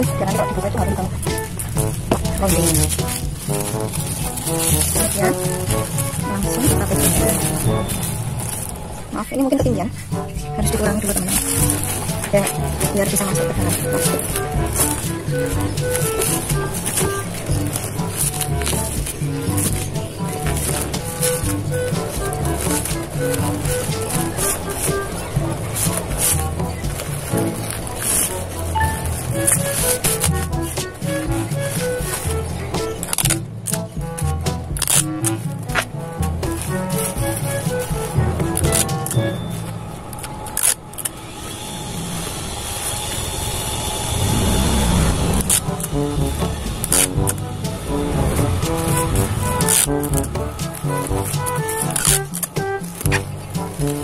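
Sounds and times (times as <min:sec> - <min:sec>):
plastic wrap crackling: 0:00.0 - 0:41.2, 0:44.2 - 0:54.0
plastic bag rustling: 0:00.0 - 0:41.7, 0:44.1 - 0:54.0
background music: 0:00.0 - 0:54.0.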